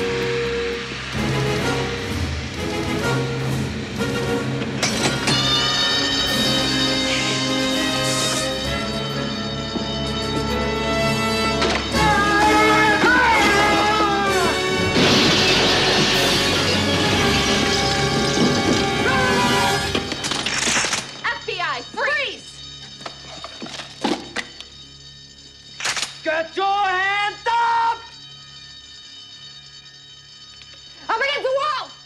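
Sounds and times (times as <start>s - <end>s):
glass window shattering: 4.8s - 5.9s, 13.3s - 21.3s
bodies crashing through glass: 14.6s - 21.3s.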